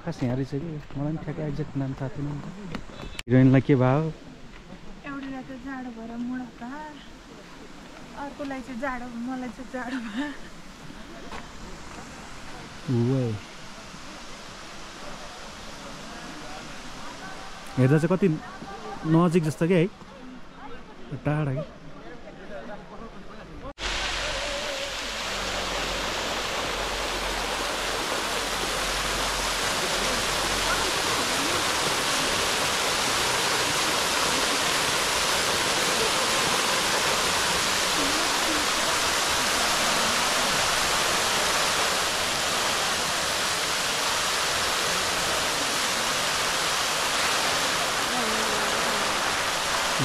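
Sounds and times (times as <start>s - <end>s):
fountain water splashing: 3.9s - 19.8s, 23.8s - 50.0s.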